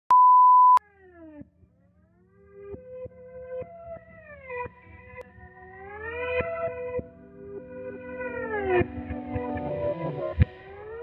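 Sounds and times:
steady test tone beep: 0.1s - 0.8s.

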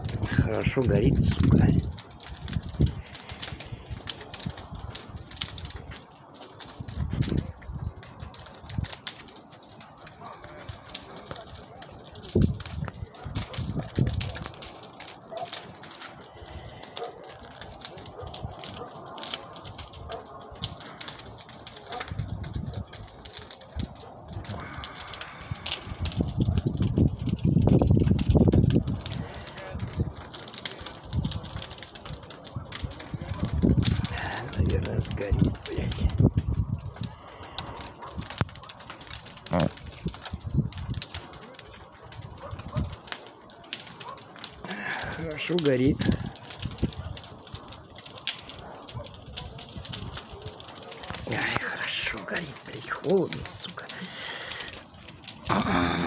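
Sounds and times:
wind rumble on microphone: 0.0s - 6.0s, 6.6s - 9.8s, 10.5s - 43.2s, 45.9s - 51.8s
fire crackling and popping: 0.0s - 56.0s.

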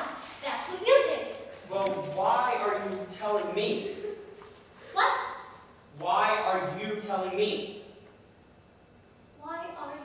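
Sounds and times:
man speaking: 1.6s - 4.2s, 5.9s - 7.9s.

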